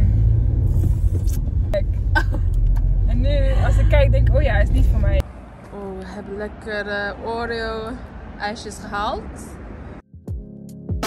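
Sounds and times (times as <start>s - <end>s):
car engine rumble: 0.0s - 10.0s
road noise: 0.0s - 10.1s.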